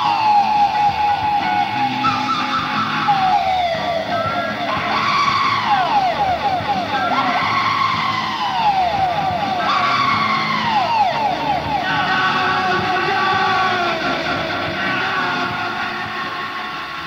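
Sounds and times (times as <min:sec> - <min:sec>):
falling pitch glides: 0:00.0 - 0:13.9
live rock band playing: 0:00.0 - 0:17.0.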